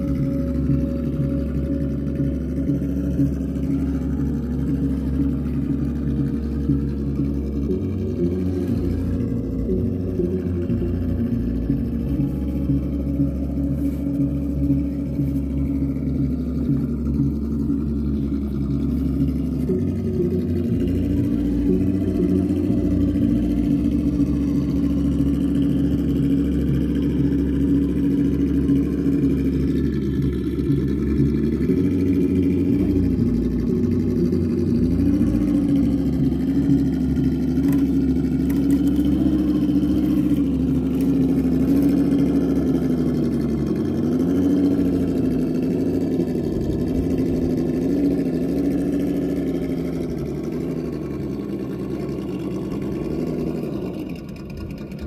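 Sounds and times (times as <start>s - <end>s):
simulated truck engine: 0.0s - 55.0s.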